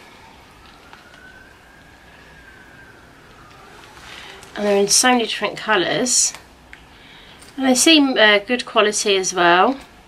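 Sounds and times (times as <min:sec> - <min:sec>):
distant siren: 0:00.0 - 0:06.5.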